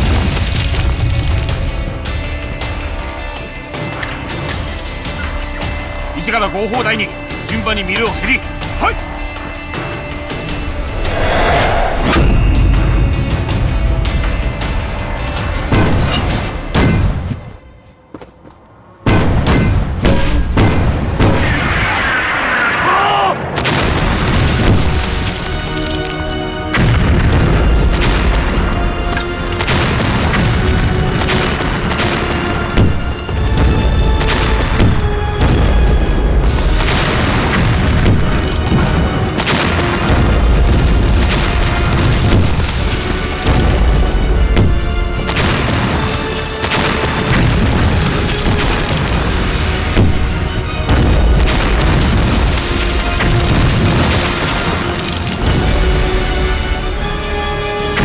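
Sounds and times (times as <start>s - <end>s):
dramatic music: 0.0s - 58.0s
shells exploding: 36.6s - 43.9s, 44.6s - 55.8s
field guns firing: 44.6s - 55.7s.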